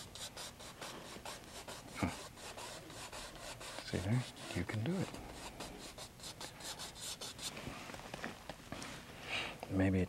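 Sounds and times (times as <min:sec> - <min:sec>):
paintbrush scrubbing on canvas: 0:00.0 - 0:07.7.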